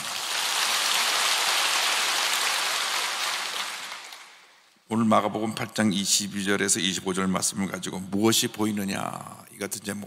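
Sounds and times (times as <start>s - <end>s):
crowd applauding: 0.0s - 4.6s.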